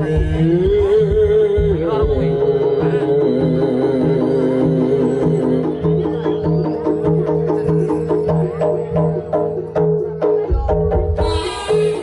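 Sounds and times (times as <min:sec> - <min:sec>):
drum and gong pattern: 0:00.0 - 0:12.0.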